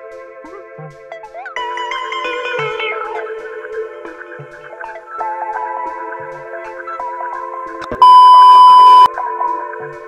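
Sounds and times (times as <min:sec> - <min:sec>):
electronic background music: 0:00.0 - 0:10.0
single-pitch beep tone: 0:08.0 - 0:09.1.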